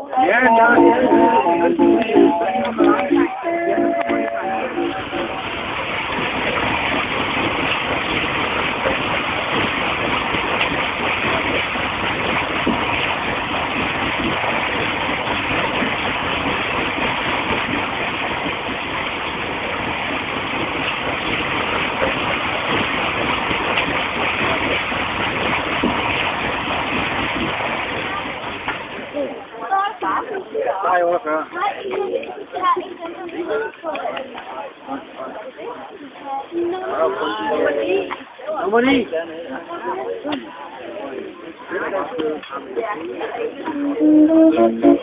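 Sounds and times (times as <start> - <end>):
water splashing off mill wheel: 4.0 - 29.8.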